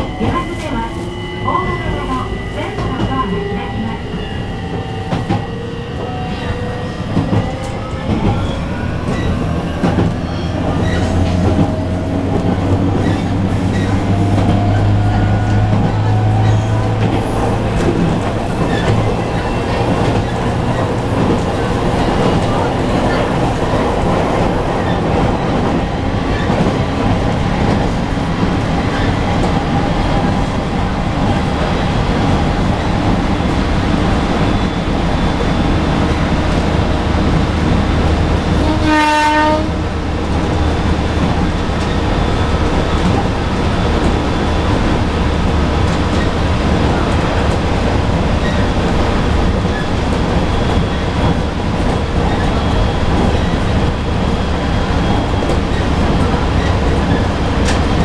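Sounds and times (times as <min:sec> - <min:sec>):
train traction motors whining: 0:00.0 - 0:58.0.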